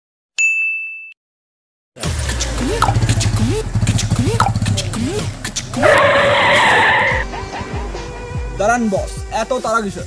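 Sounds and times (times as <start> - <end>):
high bell-like ding: 0.4 - 1.2.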